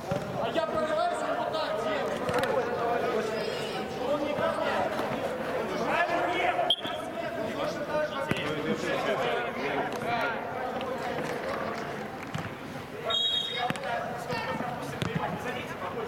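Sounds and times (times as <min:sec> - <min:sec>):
ball being kicked: 0:15.0 - 0:15.4.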